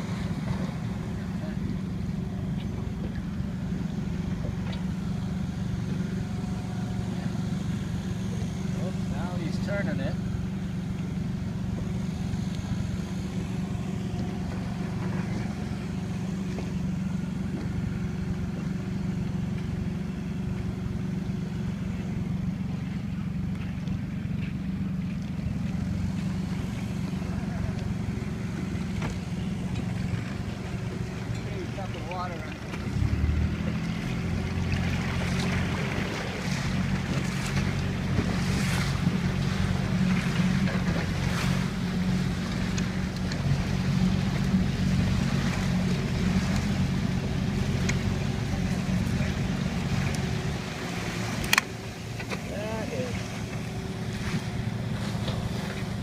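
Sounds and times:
motorboat engine running: 0:00.0 - 0:56.0.

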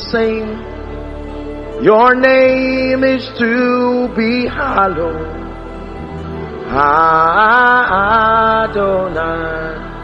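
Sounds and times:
man singing into a microphone: 0:00.0 - 0:00.7, 0:01.8 - 0:05.5, 0:06.3 - 0:10.0
low instrumental backing: 0:00.0 - 0:10.0.

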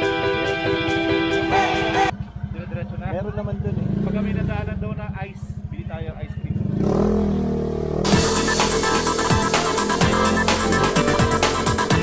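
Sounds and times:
motorcycle engine idling and revving: 0:00.0 - 0:12.0.

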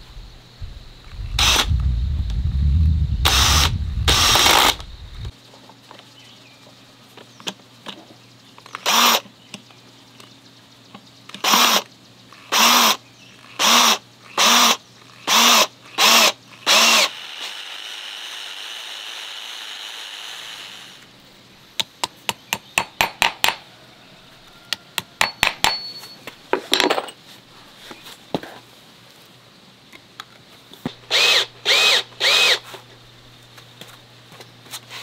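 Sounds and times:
quiet steady whir: 0:00.0 - 0:05.3
cordless drill driving screw: 0:01.4 - 0:01.7, 0:03.2 - 0:04.8, 0:13.6 - 0:21.0, 0:31.1 - 0:32.7.

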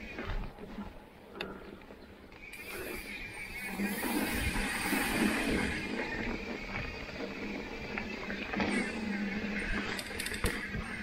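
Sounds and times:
bike rattling: 0:00.0 - 0:11.0
bike tyres on dirt trail: 0:00.0 - 0:11.0.

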